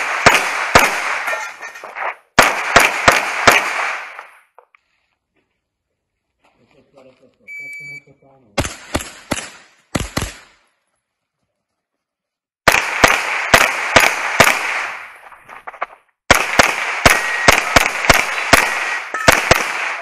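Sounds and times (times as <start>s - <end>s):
rapid pistol fire: 0.0s - 1.3s, 2.4s - 4.4s, 8.6s - 10.6s, 12.7s - 20.0s
rifle shot: 0.0s - 4.4s, 8.6s - 10.6s, 12.7s - 20.0s.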